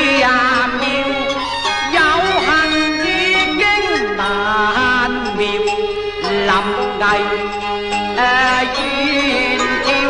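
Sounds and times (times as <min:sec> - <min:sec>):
traditional opera ensemble playing: 0:00.0 - 0:10.0.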